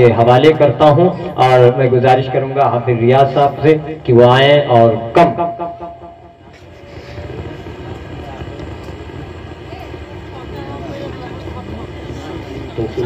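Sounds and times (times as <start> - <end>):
public address announcements: 0.0 - 6.7
faint voices talking: 0.0 - 13.0
steady low rumble: 0.0 - 13.0.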